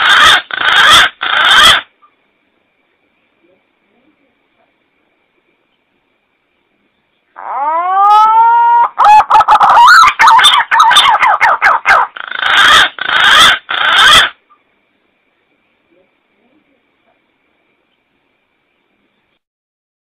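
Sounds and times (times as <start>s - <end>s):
pigeon whistling calls: 7.7s - 14.4s.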